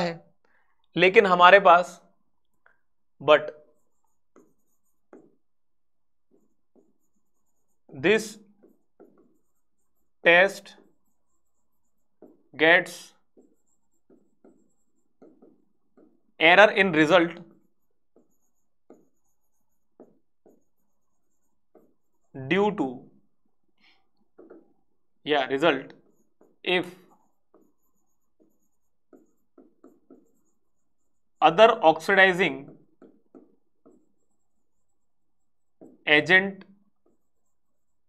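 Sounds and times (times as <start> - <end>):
pen scratching on a board: 1.9 - 38.0.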